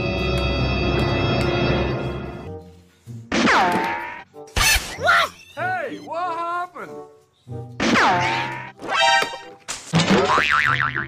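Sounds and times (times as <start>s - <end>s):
background music: 0.0s - 11.0s
cartoon boing tone: 10.0s - 11.0s.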